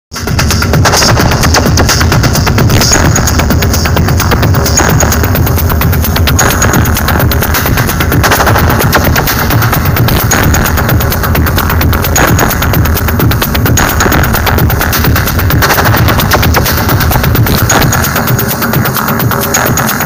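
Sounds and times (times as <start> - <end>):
live techno music: 0.1 - 20.0.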